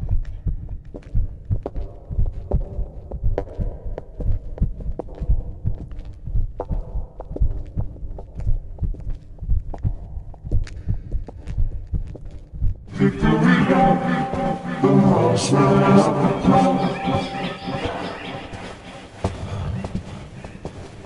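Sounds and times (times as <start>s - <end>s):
faint hum: 12.9s - 21.0s.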